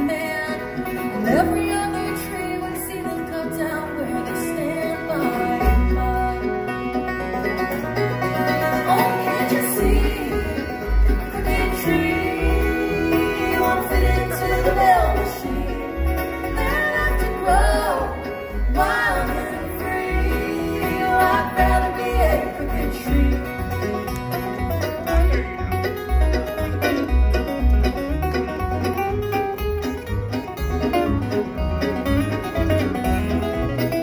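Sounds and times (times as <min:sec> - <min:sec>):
bluegrass band playing: 0:00.0 - 0:34.0
sliding fiddle: 0:00.0 - 0:34.0
upright bass notes: 0:00.0 - 0:34.0.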